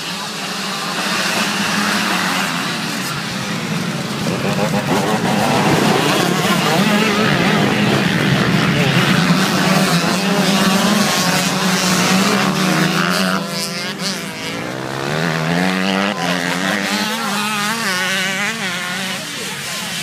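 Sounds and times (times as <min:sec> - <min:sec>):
dirt bike engines revving: 0:00.0 - 0:20.0.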